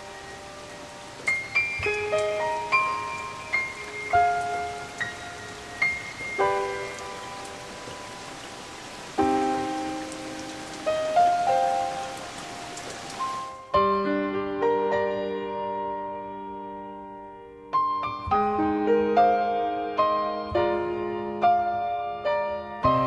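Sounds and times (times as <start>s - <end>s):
heavy rain hiss: 0.0s - 13.8s
piano chords: 0.0s - 23.0s.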